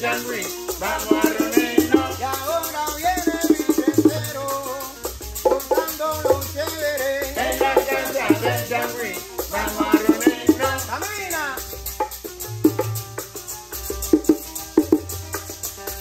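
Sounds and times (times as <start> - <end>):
men singing: 0.0 - 11.8
bongo drums: 0.0 - 16.0
maraca shaking: 0.0 - 16.0
strummed guitar: 0.0 - 16.0.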